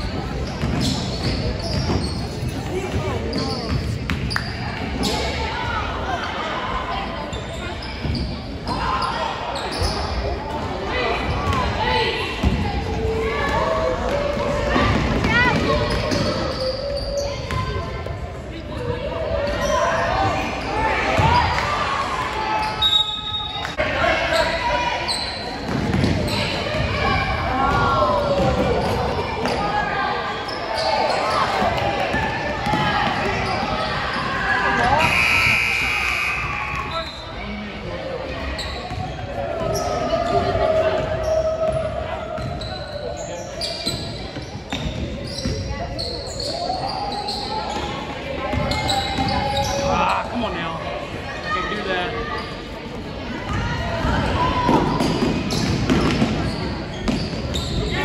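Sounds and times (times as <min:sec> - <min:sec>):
voices of players and spectators: 0:00.0 - 0:58.0
basketball bouncing on court: 0:00.4 - 0:04.4, 0:14.8 - 0:16.6, 0:25.6 - 0:29.6, 0:32.1 - 0:34.2, 0:38.8 - 0:39.8.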